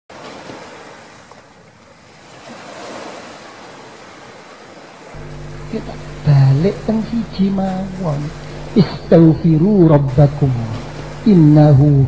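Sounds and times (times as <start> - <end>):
ocean surf washing in: 5.2 - 12.0
steady low hum: 5.2 - 12.0.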